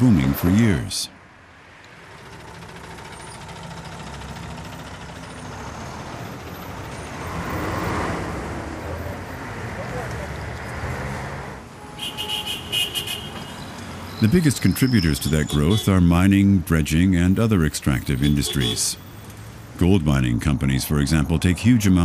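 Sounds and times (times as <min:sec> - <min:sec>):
dense street traffic rumble: 0:00.0 - 0:22.0.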